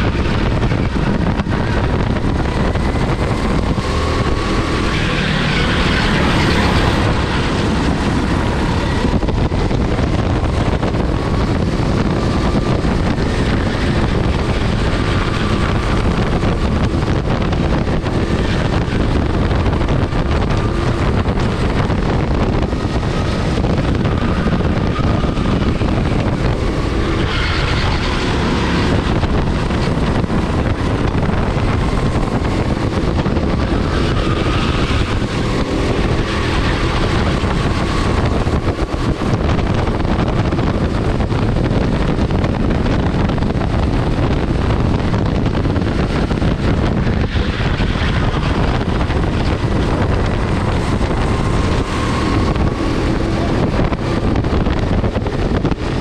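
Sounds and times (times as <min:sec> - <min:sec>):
go-kart engine racing: 0:00.0 - 0:56.0
wind noise on microphone: 0:00.0 - 0:56.0.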